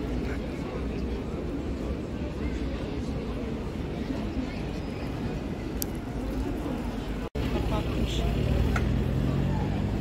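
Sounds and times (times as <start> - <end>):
passers-by talking: 0.0 - 10.0.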